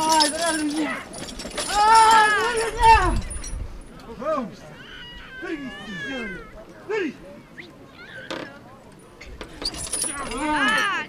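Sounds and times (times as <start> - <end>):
people shouting calls: 0.0 - 3.3, 10.0 - 11.0.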